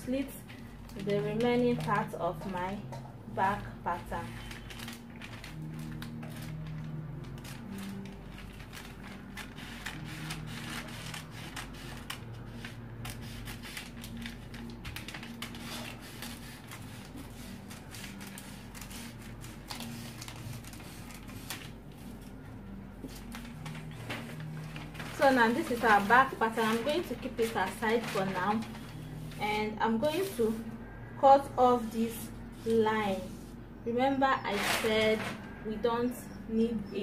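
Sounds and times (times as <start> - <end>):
paper rustling: 4.2 - 22.4, 23.0 - 30.6, 34.5 - 35.5.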